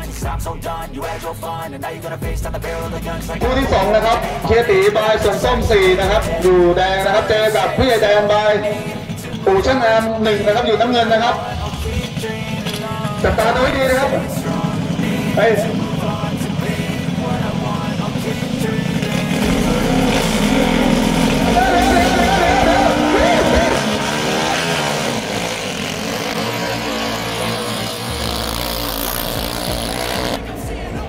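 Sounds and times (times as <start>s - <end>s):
boat engines revving: 2.5s - 31.0s.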